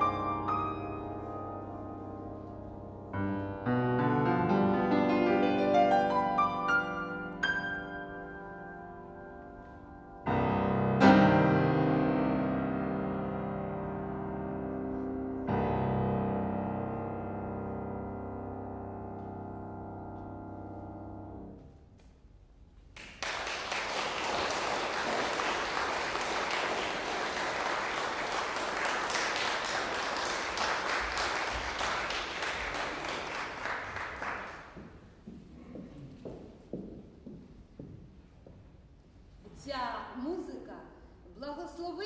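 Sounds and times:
audience applause: 23.0 - 34.8.

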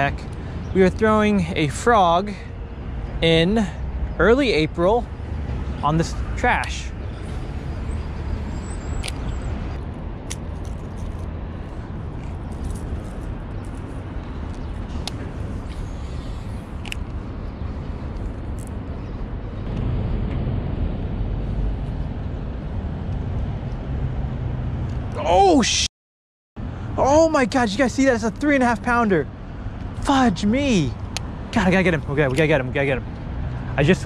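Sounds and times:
road traffic rumble: 0.0 - 25.9, 26.6 - 34.0.

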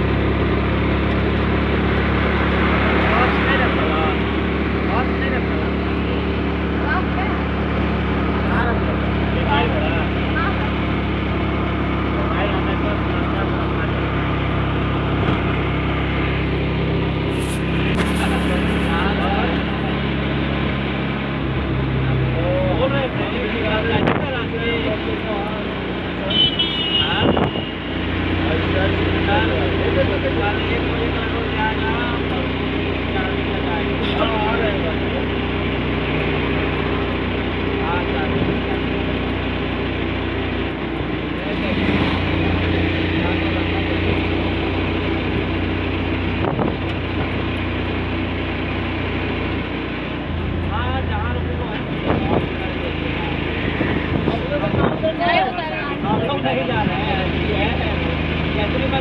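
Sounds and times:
indistinct voices: 0.0 - 59.0
moving vehicle hum: 0.0 - 59.0
passing traffic: 0.0 - 59.0.

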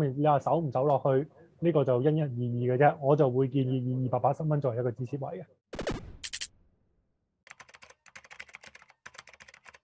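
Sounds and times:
rapid keyboard keystroke clicks: 7.5 - 9.9.

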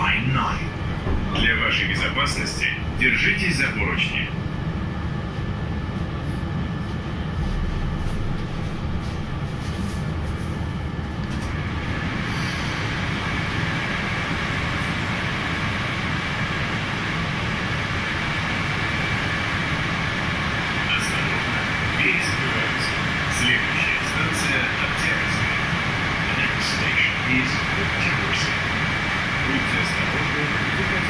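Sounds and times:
train car rumbling: 0.0 - 31.0
high-pitched brake squeal: 12.2 - 12.9.

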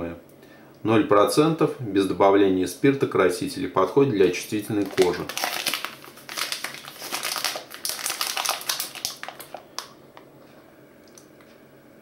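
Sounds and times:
plastic packaging crinkling: 4.3 - 10.3.

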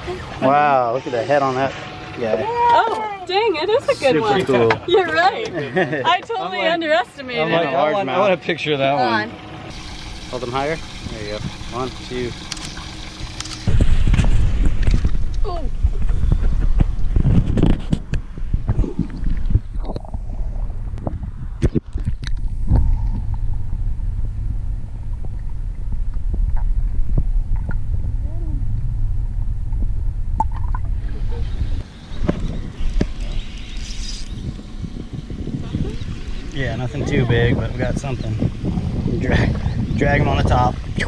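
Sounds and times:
water sloshing: 9.7 - 15.2
underwater low rumble: 9.7 - 41.0.

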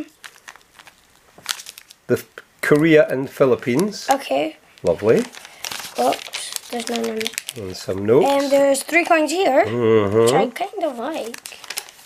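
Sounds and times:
paper pages rustling: 0.0 - 1.9, 4.8 - 9.4, 10.4 - 12.0
plastic bag crinkling: 0.0 - 9.4, 10.5 - 12.0.

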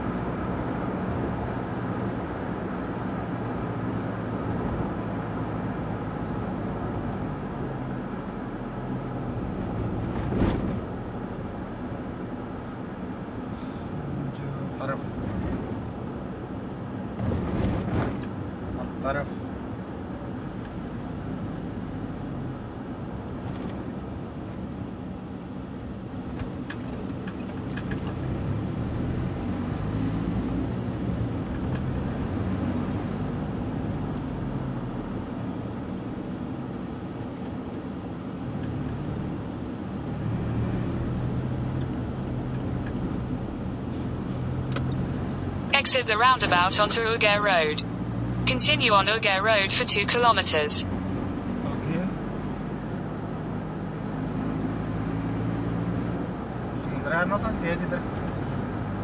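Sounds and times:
car engine hum: 0.0 - 59.0.

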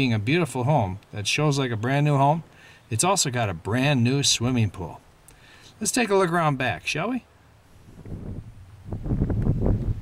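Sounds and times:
wind buffeting microphone: 7.7 - 10.0.

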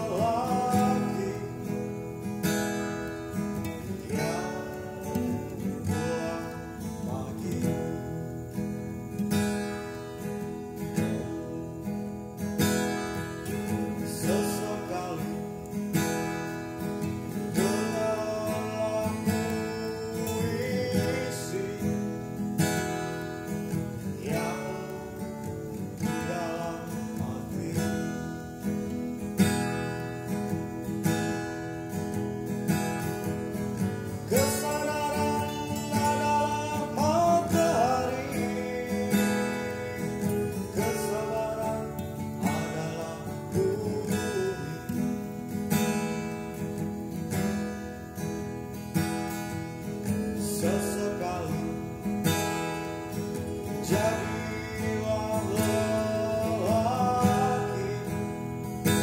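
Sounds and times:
man singing: 0.0 - 8.6, 13.4 - 29.0, 33.0 - 45.8, 50.0 - 59.0
acoustic guitar strumming: 0.0 - 59.0.

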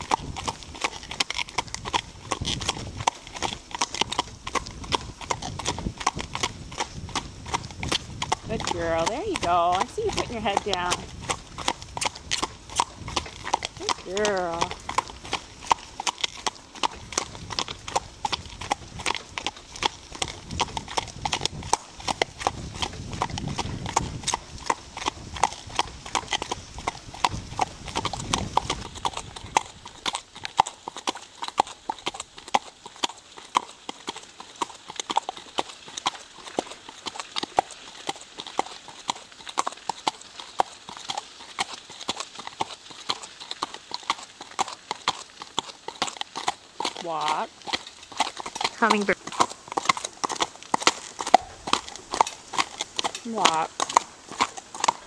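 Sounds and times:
hooves clip-clopping on pavement: 0.0 - 55.0.

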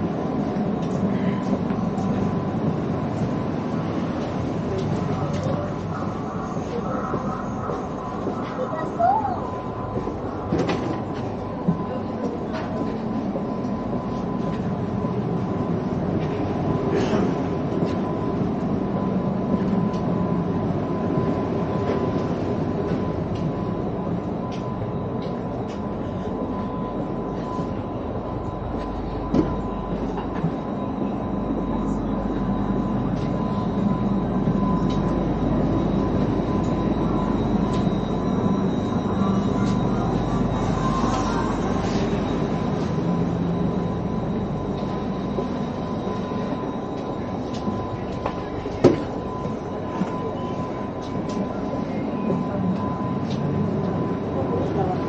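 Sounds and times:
high whine: 0.0 - 55.0
train ventilation hum: 0.0 - 55.0.

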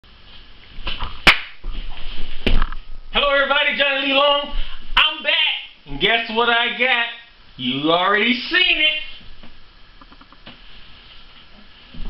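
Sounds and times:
sharp snap: 1.0 - 1.6.

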